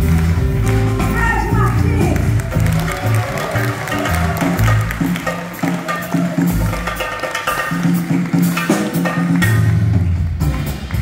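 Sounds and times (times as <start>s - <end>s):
light drum kit percussion: 0.0s - 11.0s.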